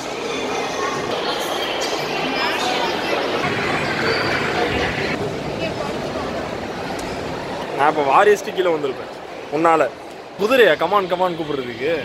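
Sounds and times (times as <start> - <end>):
shopping mall hum and hiss: 0.0 - 12.0.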